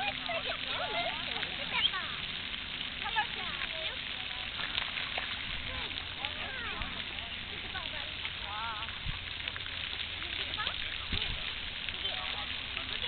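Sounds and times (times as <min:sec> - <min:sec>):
steady outdoor hiss: 0:00.0 - 0:13.0.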